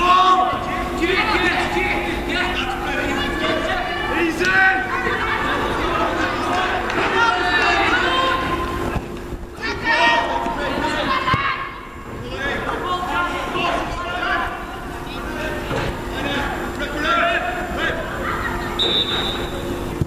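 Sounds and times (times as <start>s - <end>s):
voices calling out: 0.0s - 20.0s.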